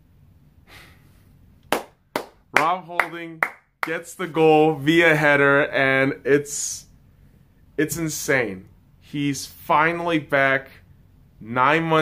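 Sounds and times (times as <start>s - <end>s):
faint breath: 0.6s - 1.4s
hand clap: 1.6s - 4.0s.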